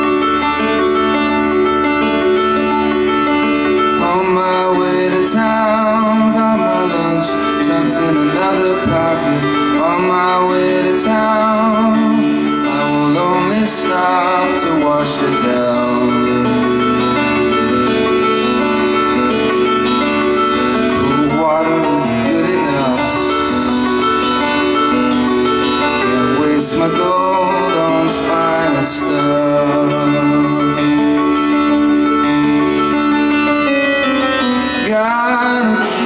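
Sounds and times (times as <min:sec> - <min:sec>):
grand piano chords: 0:00.0 - 0:36.0.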